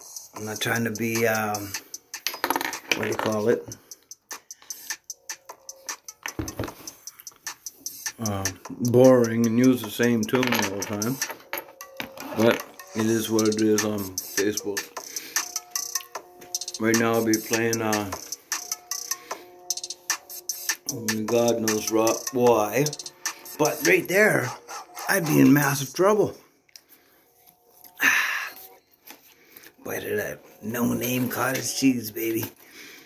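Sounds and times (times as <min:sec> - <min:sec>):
held notes over clicking beat: 0:00.0 - 0:26.0
faint background music: 0:00.0 - 0:33.0.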